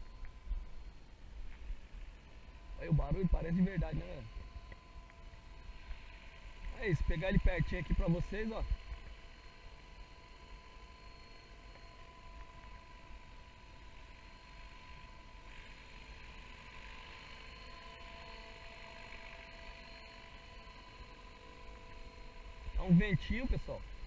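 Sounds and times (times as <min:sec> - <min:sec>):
rc helicopter motor whine: 0:00.0 - 0:24.0.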